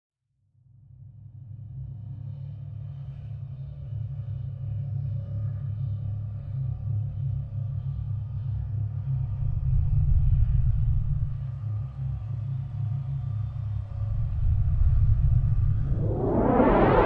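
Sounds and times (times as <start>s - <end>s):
deep bass drone: 13.8s - 17.0s.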